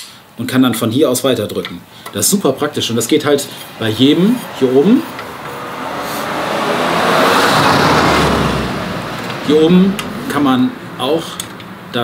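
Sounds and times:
car passing by: 0:03.2 - 0:11.0.

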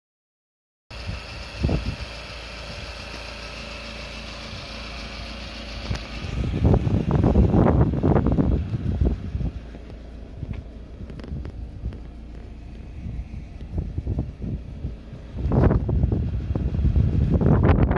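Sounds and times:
engine idling: 0:00.9 - 0:17.9
rumbling on microphone: 0:06.6 - 0:17.9.

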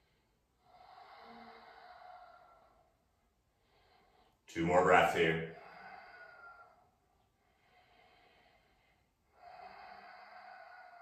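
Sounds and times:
man breathing slowly: 0:00.0 - 0:04.5, 0:05.4 - 0:11.0.

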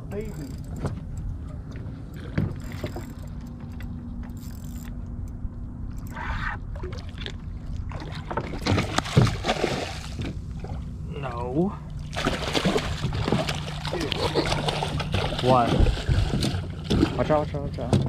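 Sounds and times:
outboard motor running: 0:00.0 - 0:18.0
water slapping against hull: 0:06.7 - 0:10.8, 0:12.0 - 0:18.0
fish splashing at surface: 0:06.8 - 0:10.2, 0:12.1 - 0:17.2.

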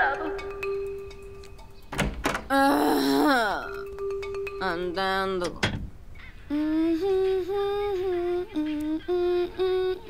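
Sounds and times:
girl humming a tune: 0:02.5 - 0:04.0, 0:06.5 - 0:10.0.

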